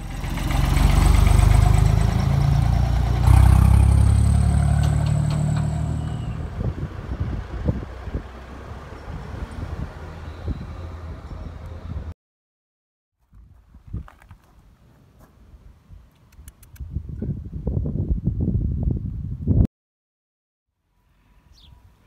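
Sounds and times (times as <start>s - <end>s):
tractor engine running: 0.0s - 7.7s.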